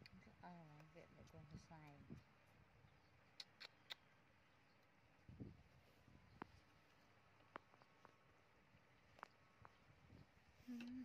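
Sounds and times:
faint high suckling clicks: 3.3s - 4.1s.

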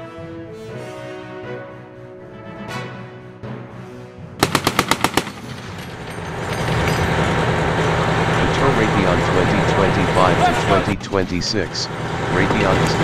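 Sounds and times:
machine-gun fire: 4.4s - 6.4s.

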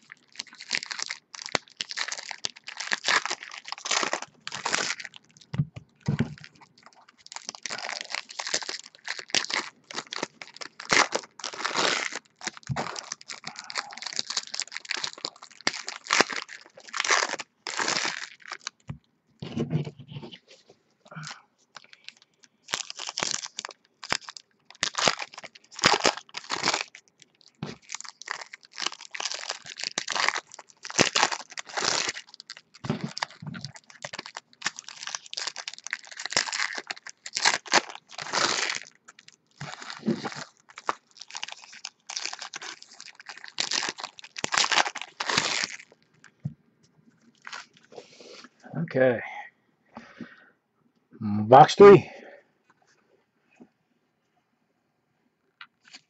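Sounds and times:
foil wrappers tearing and crinkling: 0.0s - 5.5s, 6.1s - 18.9s, 21.8s - 46.0s.

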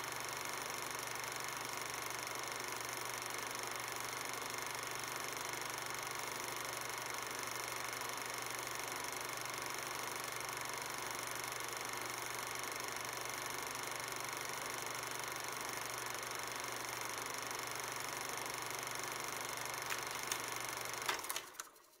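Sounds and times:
film projector hiss and whir: 0.0s - 22.0s
sharp clicks: 19.8s - 21.8s.

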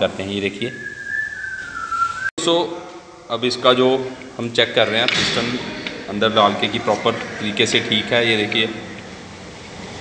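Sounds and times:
person whistling: 0.7s - 2.3s.

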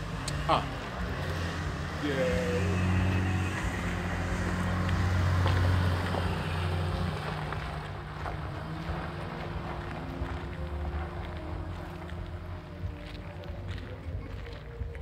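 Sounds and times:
tricycle car engine pulling away: 0.0s - 15.0s.

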